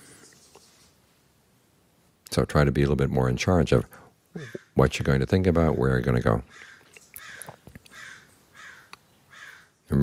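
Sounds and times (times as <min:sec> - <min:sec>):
bird calling: 0:04.4 - 0:04.8, 0:06.4 - 0:10.0.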